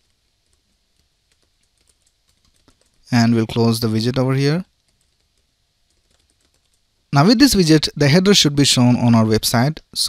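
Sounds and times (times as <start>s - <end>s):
faint keyboard typing: 0.0s - 3.7s, 4.7s - 7.1s.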